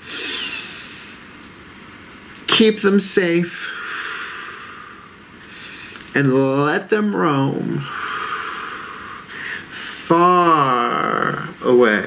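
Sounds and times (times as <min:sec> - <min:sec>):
man breathing out: 0:00.0 - 0:01.3, 0:03.6 - 0:06.1, 0:07.8 - 0:09.8.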